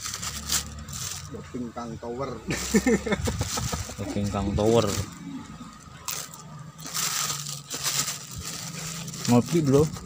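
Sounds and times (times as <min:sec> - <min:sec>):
plastic bag rustling: 0:00.0 - 0:01.4, 0:02.5 - 0:10.0.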